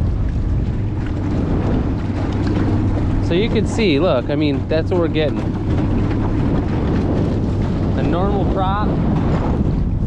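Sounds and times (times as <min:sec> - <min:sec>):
outboard motor running: 0:00.0 - 0:10.0
wind buffeting microphone: 0:00.0 - 0:10.0.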